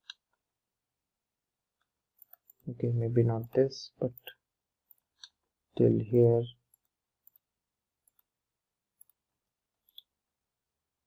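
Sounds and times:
computer mouse clicks: 6.7 - 8.3, 9.8 - 10.2.

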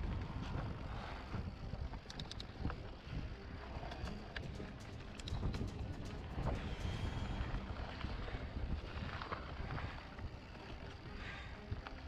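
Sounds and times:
bike clicks and rattles: 0.0 - 12.0
wind buffeting microphone: 0.0 - 12.0.

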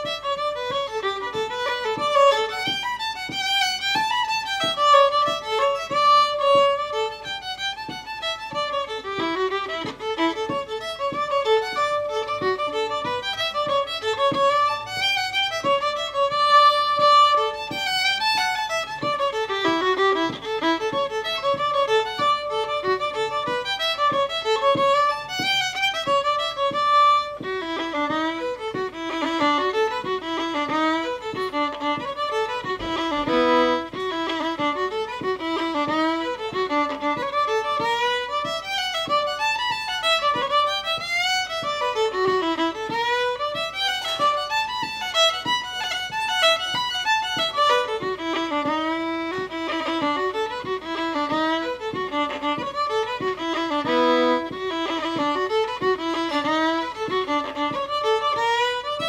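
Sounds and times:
solo fiddle playing a reel: 0.0 - 59.0.

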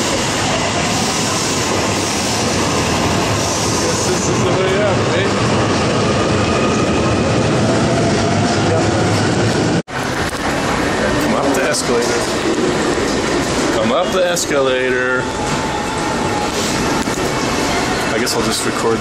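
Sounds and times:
train rail noise: 0.0 - 19.0
crowd voices: 8.2 - 19.0.

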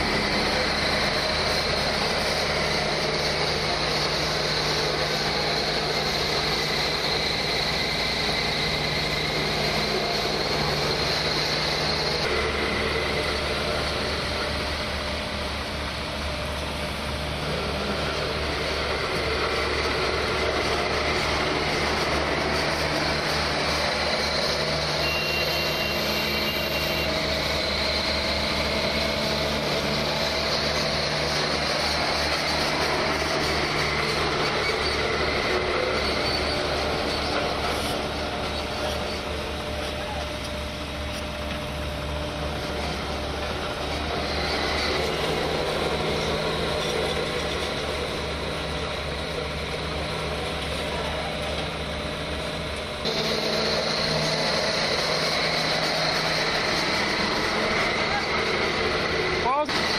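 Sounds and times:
diesel engines running: 0.0 - 59.9
short high beep: 25.0 - 27.1.

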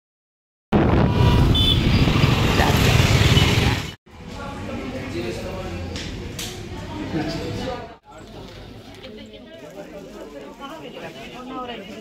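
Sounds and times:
traffic rumbling past: 0.8 - 7.8.

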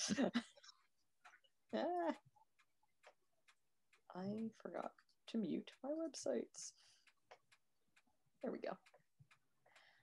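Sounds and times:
person laughing: 0.0 - 0.6.

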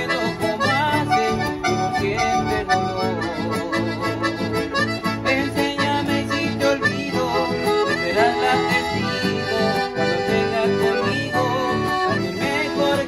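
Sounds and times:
piano accordion melody: 0.0 - 13.0
strummed acoustic guitar: 0.0 - 13.0.

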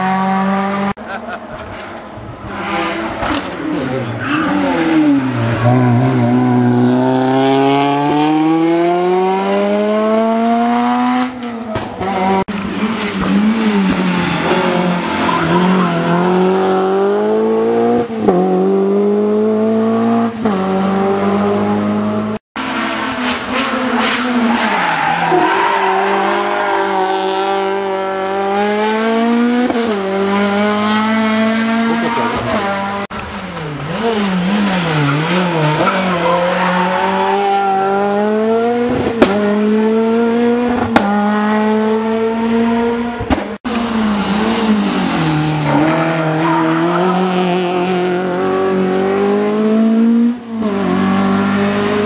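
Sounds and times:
rally cars accelerating: 0.0 - 52.0.

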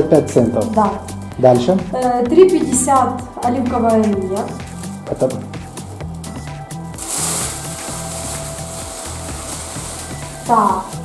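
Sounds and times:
background music with bass line: 0.0 - 11.0
plastic bag rustling: 4.6 - 5.0, 7.0 - 11.0.

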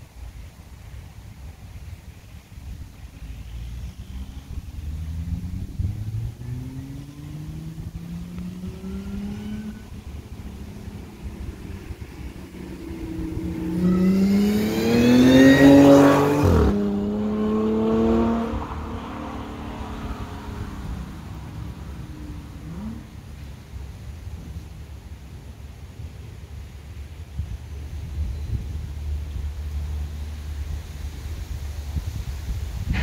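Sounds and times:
car engine accelerating past: 3.3 - 23.6.

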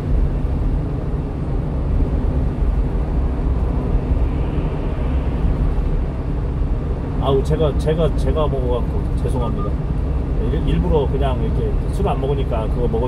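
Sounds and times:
truck engine and tyre rumble: 0.0 - 13.0.

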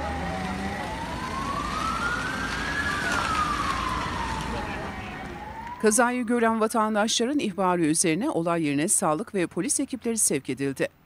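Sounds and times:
emergency vehicle siren wailing: 0.0 - 7.1
busy street noise: 0.0 - 11.0.

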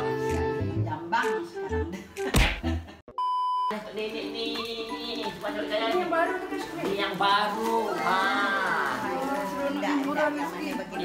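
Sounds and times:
people talking: 3.7 - 11.0.

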